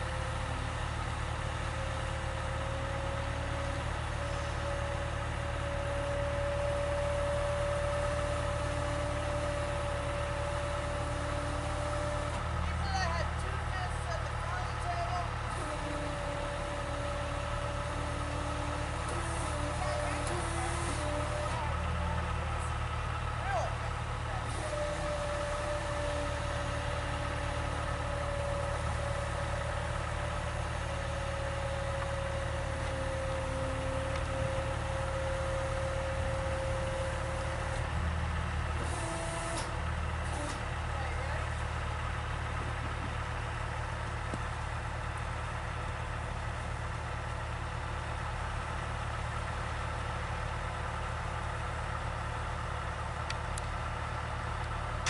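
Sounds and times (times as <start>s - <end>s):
truck engine idling: 0.0s - 55.0s
hydraulic liftgate whine: 24.4s - 38.1s, 38.7s - 40.8s.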